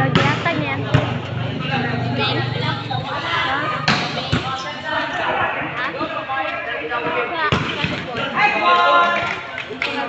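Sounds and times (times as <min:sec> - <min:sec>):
players shouting and chatting: 0:00.0 - 0:10.0
ball smacking on concrete court: 0:00.1 - 0:01.2.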